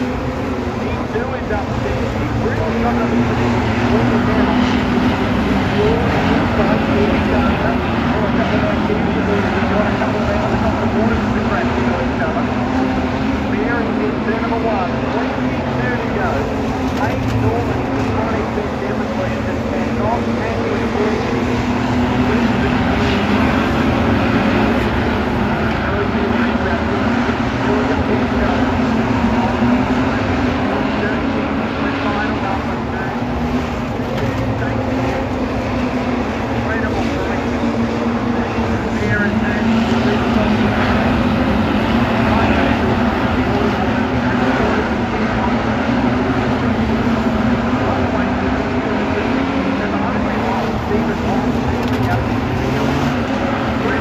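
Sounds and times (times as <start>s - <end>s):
race car engines roaring: 0.0s - 54.0s.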